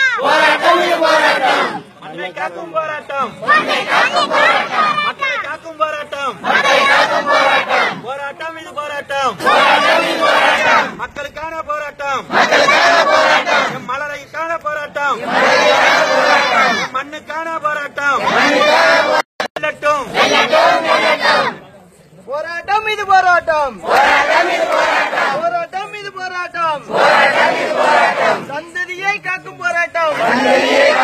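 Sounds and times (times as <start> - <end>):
crowd shouting slogans: 0.0 - 8.2, 9.2 - 11.0, 12.2 - 13.9, 15.0 - 17.0, 18.0 - 19.2, 20.0 - 21.6, 23.8 - 25.5, 26.8 - 28.6, 30.1 - 31.0.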